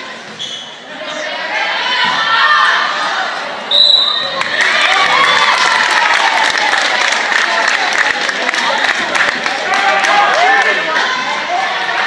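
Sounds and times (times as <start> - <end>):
crowd cheering and shouting: 0.0 - 12.0
referee's whistle blast: 3.7 - 4.4.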